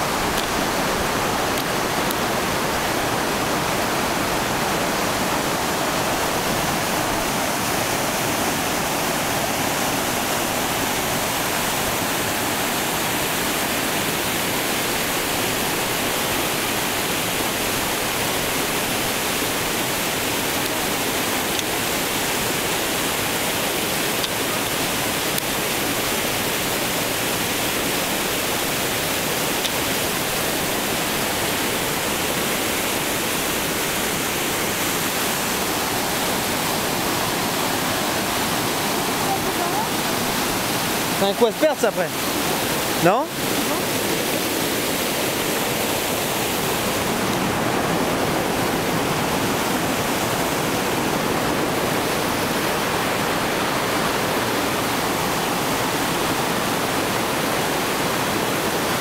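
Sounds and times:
stream rushing over rocks: 0.0s - 59.0s.

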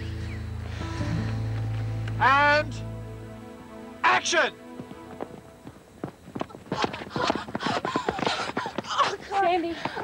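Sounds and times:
running footsteps on track: 4.7s - 10.0s.

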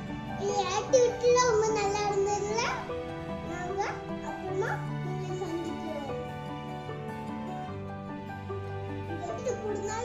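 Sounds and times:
background music: 0.0s - 10.0s
girl speaking: 0.4s - 2.8s, 3.5s - 6.2s, 9.2s - 10.0s.

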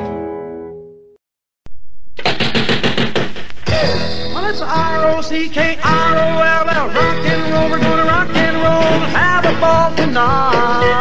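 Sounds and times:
fast drum hits: 2.2s - 4.9s
rockabilly band playing: 2.2s - 11.0s
person singing: 3.7s - 11.0s.

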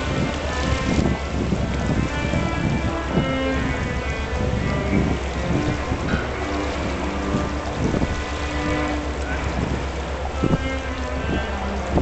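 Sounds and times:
low rumble and hiss of river: 0.0s - 12.0s.

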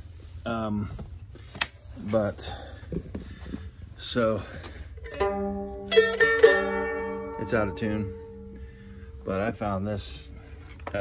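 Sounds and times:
mandolin strumming: 5.0s - 10.8s.

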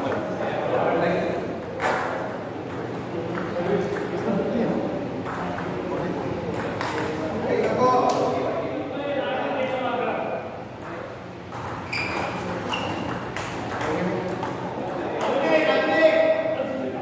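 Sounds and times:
murmur of voices: 0.0s - 17.0s.

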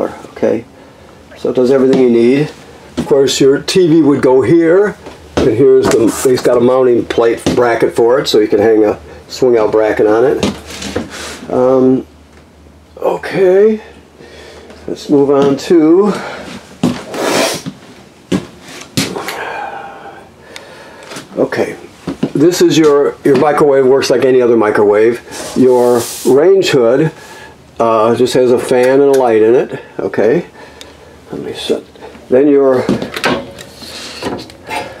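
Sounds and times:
footsteps: 5.0s - 8.0s, 10.4s - 11.2s, 14.7s - 19.2s.

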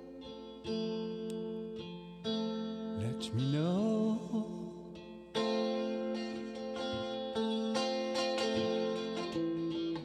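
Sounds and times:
guitar strumming chords: 0.0s - 10.0s.

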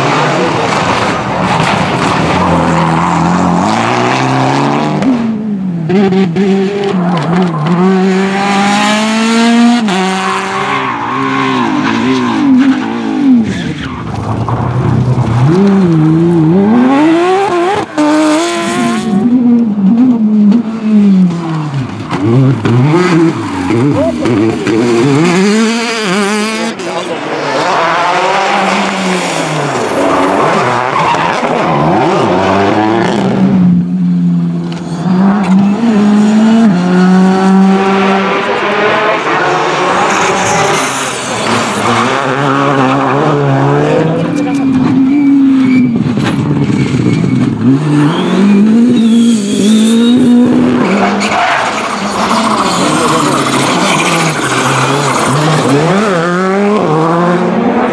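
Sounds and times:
rally car engines revving: 0.0s - 57.9s.

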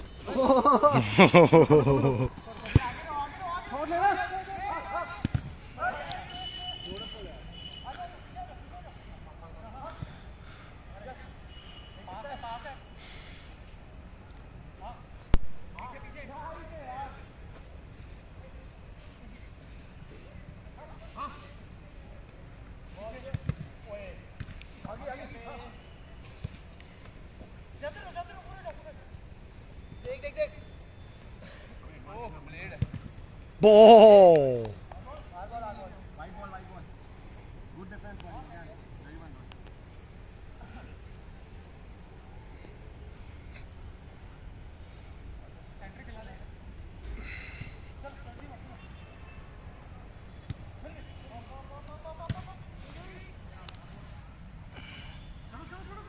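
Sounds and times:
players calling and shouting: 0.0s - 56.0s
football being kicked: 5.2s - 5.6s.

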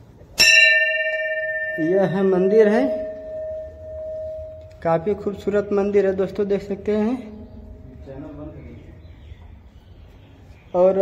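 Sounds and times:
temple bell ringing: 0.4s - 9.4s.

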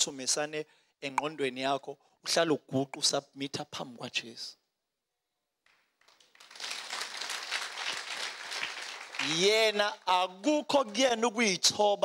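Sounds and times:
audience applauding: 6.0s - 10.0s.

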